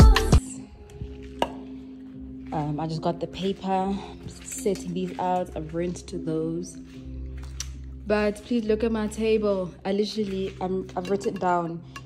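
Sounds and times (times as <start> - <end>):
person speaking: 2.4 - 7.0.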